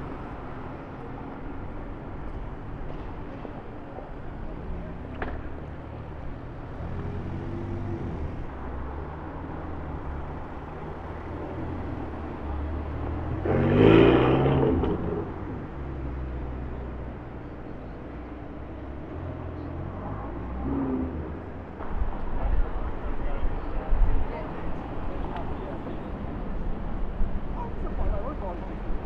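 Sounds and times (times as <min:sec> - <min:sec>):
traffic noise: 0:00.0 - 0:29.0
sports car engines pulling away: 0:04.5 - 0:22.2
car accelerating hard: 0:11.2 - 0:16.3, 0:19.4 - 0:21.6.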